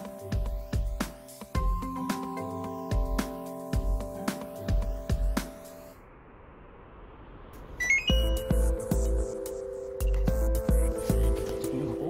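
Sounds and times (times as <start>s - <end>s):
short electronic beeps rising: 7.7s - 8.9s.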